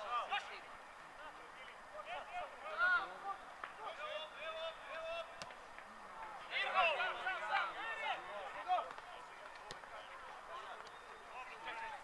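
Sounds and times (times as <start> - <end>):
players shouting: 2.0 - 12.0.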